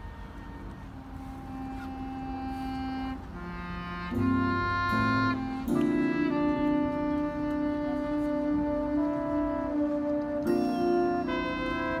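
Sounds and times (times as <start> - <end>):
marching band sustained note: 0.0 - 12.0.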